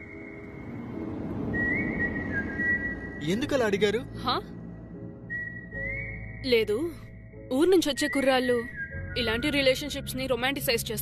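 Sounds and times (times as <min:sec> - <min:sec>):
whistled melody: 0:00.0 - 0:03.8, 0:05.0 - 0:10.3
soft sustained background music: 0:00.0 - 0:11.0.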